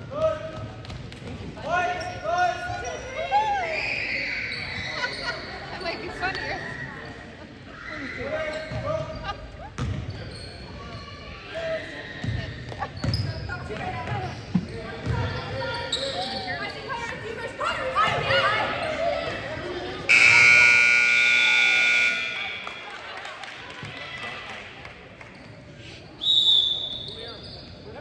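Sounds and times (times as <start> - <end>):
scoreboard buzzer: 20.1 - 22.9
players calling out: 20.1 - 23.0.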